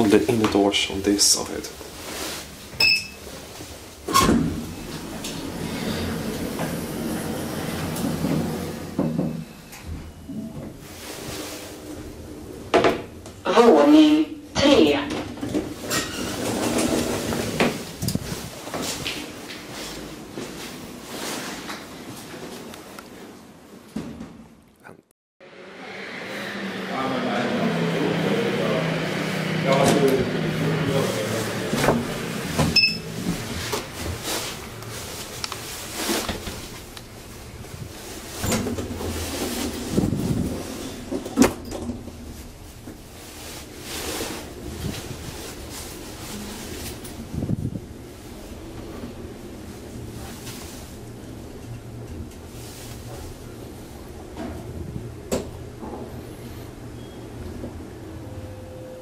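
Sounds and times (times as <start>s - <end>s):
elevator car running: 2.7s - 22.7s, 25.5s - 59.0s
elevator door clunks: 4.0s - 10.8s.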